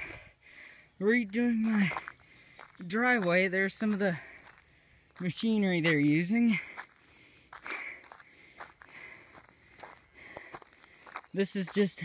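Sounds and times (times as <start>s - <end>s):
footsteps crunching on gravel: 1.2s - 12.0s.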